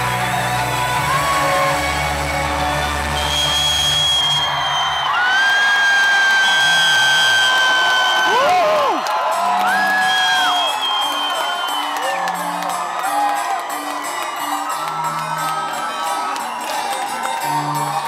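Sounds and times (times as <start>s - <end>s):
intro music over loudspeakers: 0.0s - 5.1s, 8.9s - 18.0s
crowd cheering: 0.0s - 18.0s
fans screaming: 0.0s - 18.0s.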